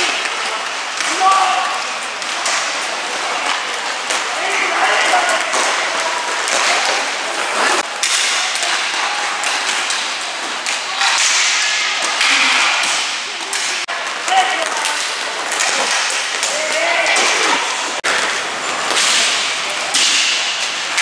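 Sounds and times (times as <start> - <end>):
players calling out: 0.0 - 20.3
skate wheels rolling on rink floor: 0.0 - 21.0
sticks clacking: 5.3 - 21.0.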